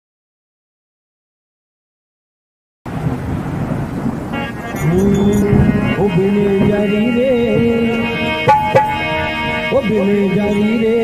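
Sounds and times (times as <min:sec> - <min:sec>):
low rumbling noise: 0:02.9 - 0:11.0
harmonium: 0:04.3 - 0:11.0
man singing: 0:04.7 - 0:11.0.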